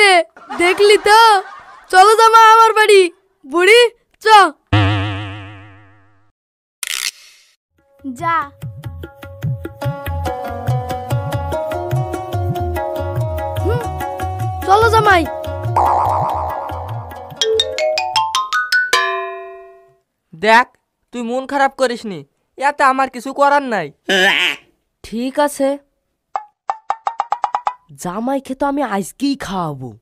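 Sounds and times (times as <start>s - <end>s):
cartoon boing sound effect: 4.7s - 6.3s, 15.8s - 17.8s
rising xylophone-like run: 15.8s - 19.8s.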